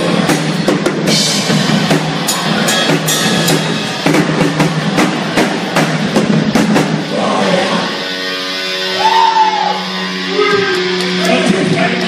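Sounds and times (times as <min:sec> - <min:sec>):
drum kit strikes: 0:00.0 - 0:07.2
sustained guitar tone: 0:07.1 - 0:12.0.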